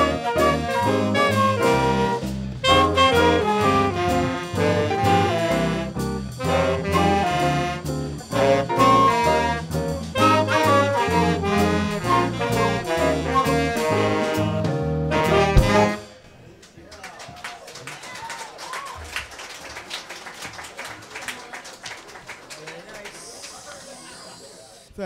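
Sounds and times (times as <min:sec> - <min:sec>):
jazz band playing live: 0:00.0 - 0:16.4.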